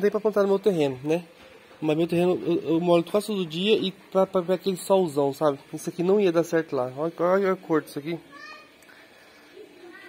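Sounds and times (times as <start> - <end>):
distant child calling: 8.2 - 8.8.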